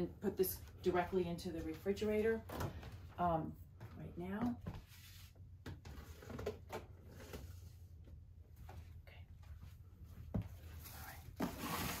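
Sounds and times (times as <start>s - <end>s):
plastic containers scraping on counter: 11.4s - 12.0s.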